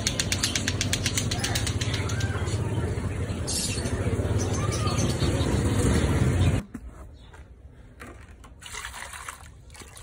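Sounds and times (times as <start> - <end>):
motor traffic: 0.0 - 8.6.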